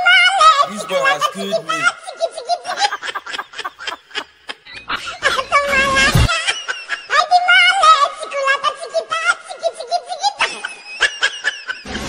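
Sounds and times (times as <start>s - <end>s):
high-pitched laughter: 0.0s - 12.0s.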